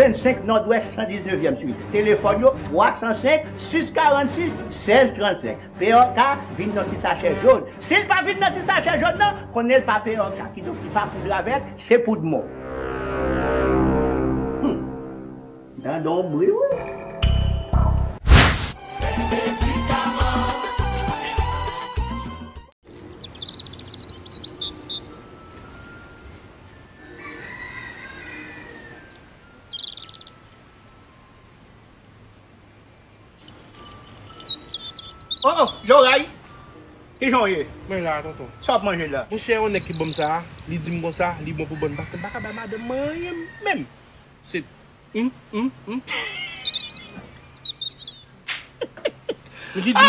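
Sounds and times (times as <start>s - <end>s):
music jingle: 12.2s - 18.0s, 24.0s - 27.8s, 29.0s - 32.0s, 33.7s - 41.4s
brief loud noisy sound: 18.2s - 18.8s
small birds chirping: 22.8s - 25.6s, 28.9s - 30.7s, 31.3s - 36.4s, 37.1s - 42.2s, 45.4s - 50.0s
outdoor background noise: 22.8s - 50.0s
rooster crowing: 27.0s - 30.4s, 39.8s - 44.0s.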